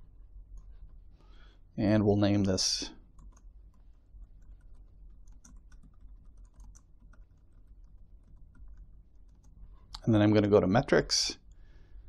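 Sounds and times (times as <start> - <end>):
computer keyboard typing: 3.1 - 9.6.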